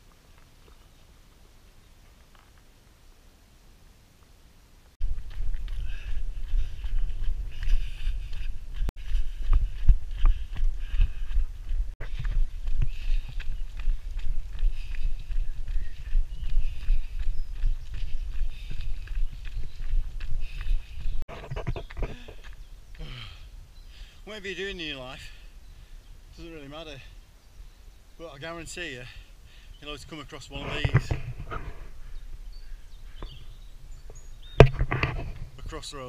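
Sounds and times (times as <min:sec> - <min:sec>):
running footsteps on trail: 0:00.0 - 0:02.7, 0:05.0 - 0:25.9, 0:29.0 - 0:34.7
wind rumble on microphone: 0:05.0 - 0:22.7.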